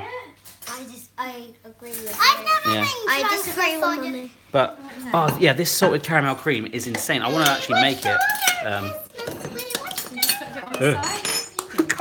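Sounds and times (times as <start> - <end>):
metal spoon clinking on plate: 9.2 - 11.8.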